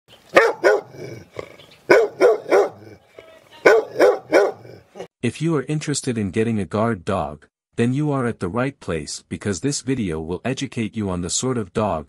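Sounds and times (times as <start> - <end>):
dog barking: 0.3 - 1.2, 1.9 - 3.0, 3.6 - 5.1.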